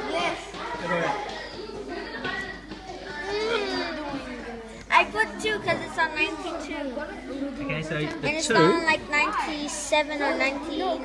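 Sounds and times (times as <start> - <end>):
children chattering: 0.0 - 11.0
child speaking: 2.0 - 11.0.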